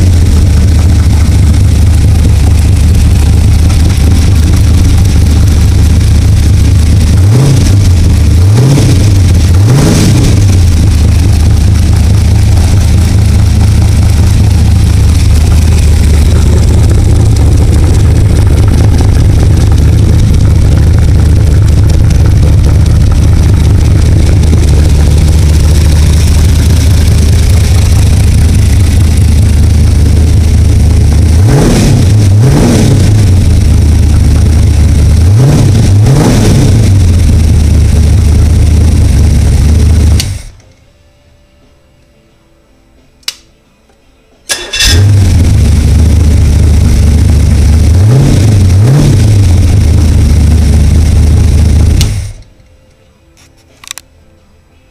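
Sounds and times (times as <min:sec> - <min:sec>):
car engine idling and revving: 0:00.0 - 0:40.6, 0:44.5 - 0:52.5.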